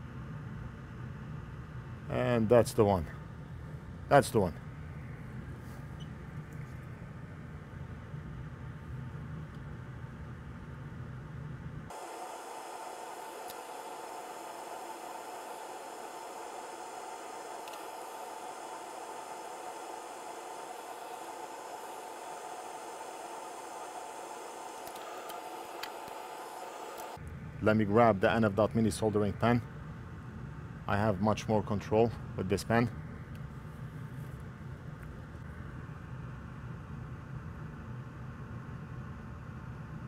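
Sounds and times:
steady background hiss: 0.0s - 40.0s
low hum: 3.0s - 31.0s.

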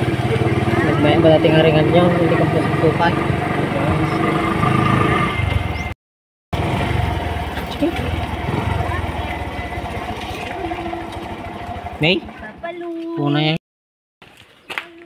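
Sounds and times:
motorcycle engine running: 0.0s - 13.6s.

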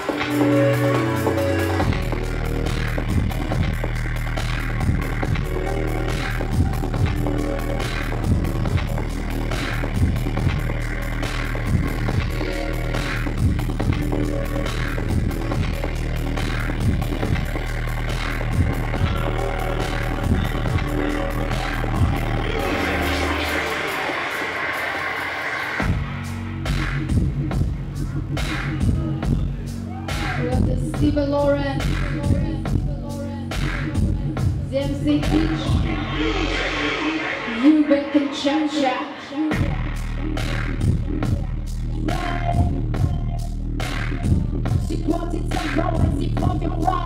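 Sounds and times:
dubstep over sound system: 0.0s - 47.0s
hissy build-up: 35.7s - 39.1s.

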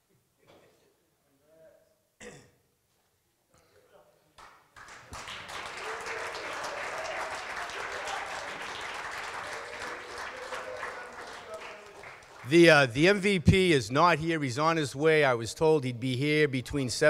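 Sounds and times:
audience applauding: 4.4s - 13.2s.

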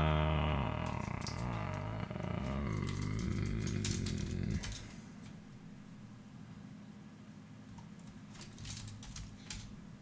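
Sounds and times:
low uneven hum: 0.0s - 10.0s
computer keyboard typing: 2.7s - 4.9s, 7.8s - 9.7s.

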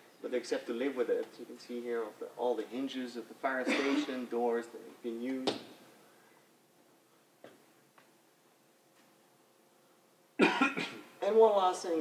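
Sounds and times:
man coughing: 3.6s - 4.2s, 10.4s - 11.1s.

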